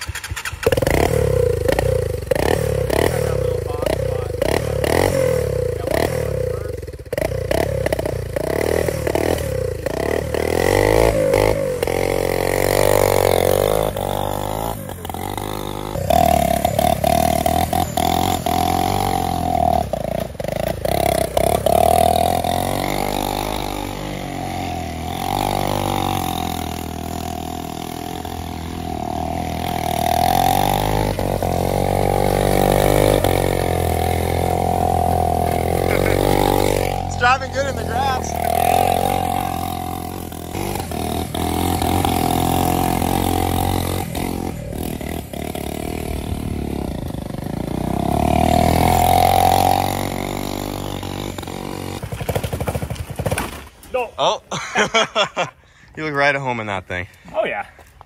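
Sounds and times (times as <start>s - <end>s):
motorcycle engine revving: 0.0s - 53.4s.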